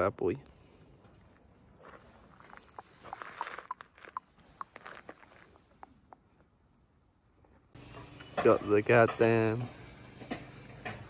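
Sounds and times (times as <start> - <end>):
footsteps crunching on gravel: 1.0 - 5.7.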